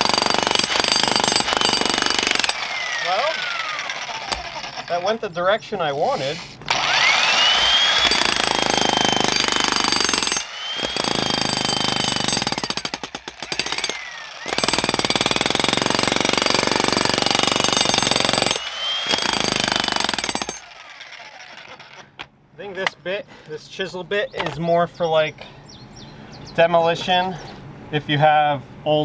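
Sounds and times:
jackhammer hammering into rock: 0.0s - 5.2s, 6.7s - 22.1s.

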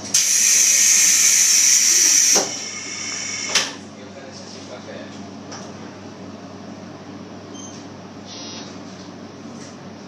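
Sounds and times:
compressed air hissing: 0.2s - 3.8s.

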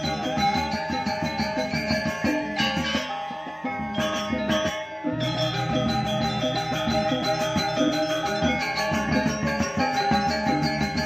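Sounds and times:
gamelan ensemble playing: 0.0s - 11.0s.

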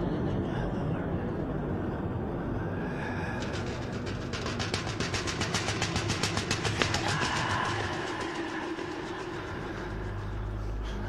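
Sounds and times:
rapid rattling: 3.4s - 10.8s.

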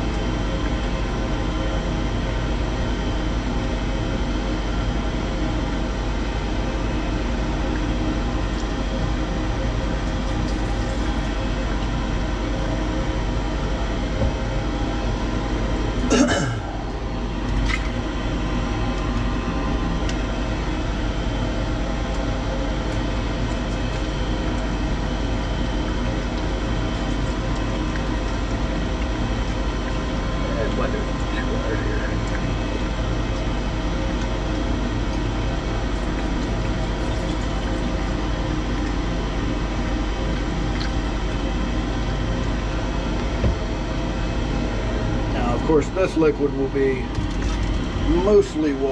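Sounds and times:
machine hum: 0.0s - 48.9s.

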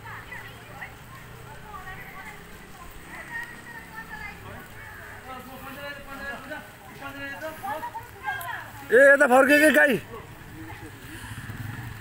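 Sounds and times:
small motorcycle engine running: 10.2s - 12.0s.

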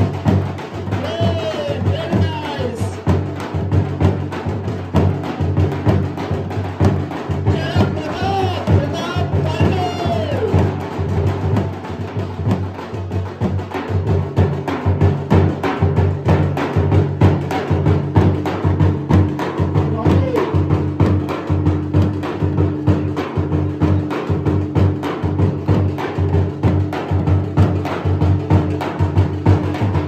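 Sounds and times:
drums beaten in fast rhythm: 0.0s - 30.0s.

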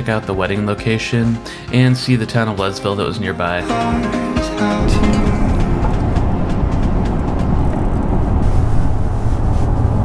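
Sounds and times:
low steady hum: 3.7s - 10.0s
tyre and engine rumble in car: 4.8s - 10.0s.

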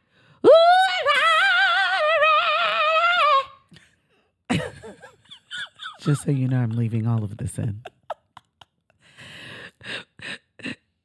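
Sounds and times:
laughter: 4.5s - 6.4s, 7.2s - 9.2s.

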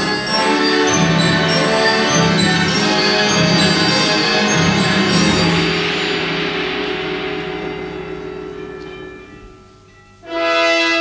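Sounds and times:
orchestra sustained chord: 0.0s - 11.0s
tubular bells ringing: 0.0s - 11.0s.

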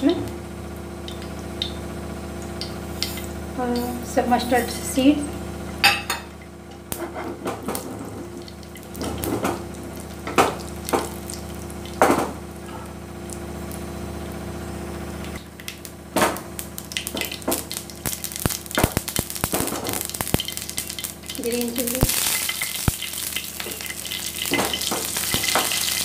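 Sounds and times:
seeds crackling in hot oil: 0.0s - 26.0s
steady low hum: 0.0s - 26.0s.

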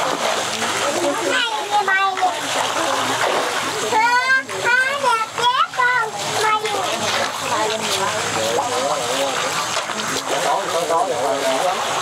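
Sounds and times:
water splashing: 0.0s - 12.0s.

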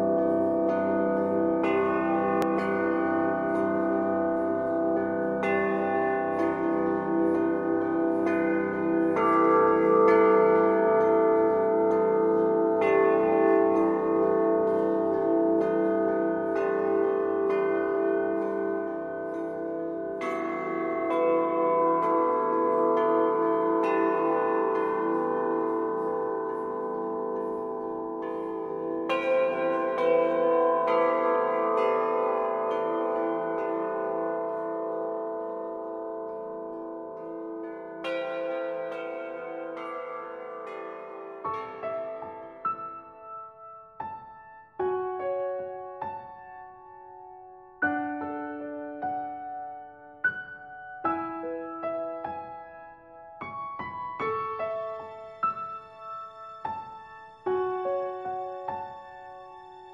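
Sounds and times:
bells ringing slowly: 0.0s - 59.9s.

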